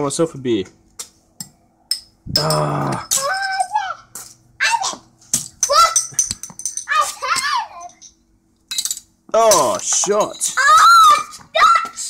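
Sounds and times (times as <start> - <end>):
metal bottle caps clattering: 5.3 - 10.6.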